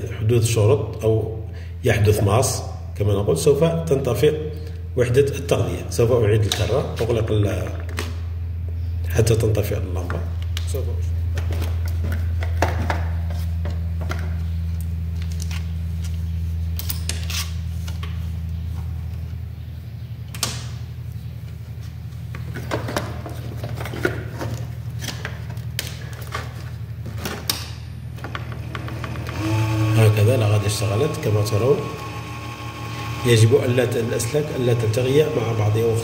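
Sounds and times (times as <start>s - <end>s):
power supply hum: 0.0s - 36.0s.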